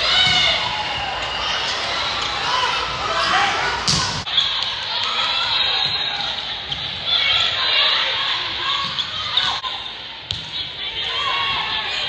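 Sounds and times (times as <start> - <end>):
volleyball hits: 0.0 - 4.3
voices of players and spectators: 0.0 - 12.0.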